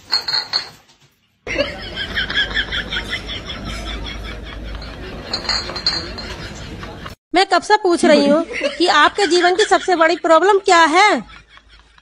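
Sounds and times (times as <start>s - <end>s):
glass bottles clinking: 0.0s - 0.9s, 4.8s - 6.6s.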